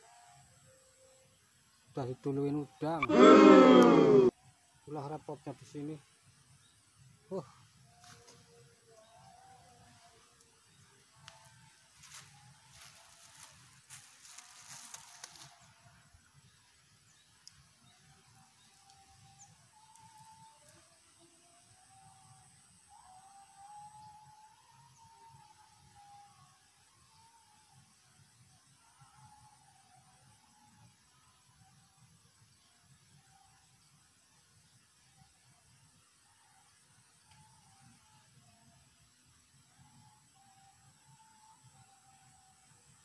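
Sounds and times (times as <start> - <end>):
faint animal calls: 2.7 - 5.2, 18.1 - 28.0.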